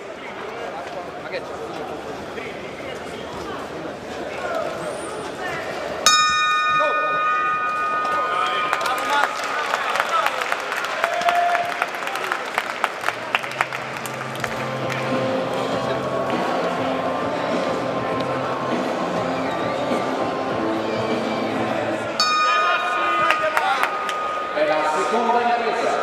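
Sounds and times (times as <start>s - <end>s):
arena crowd noise: 0.0s - 26.0s
boxing ring bell ringing: 6.1s - 10.2s, 22.2s - 26.0s
music: 12.9s - 26.0s.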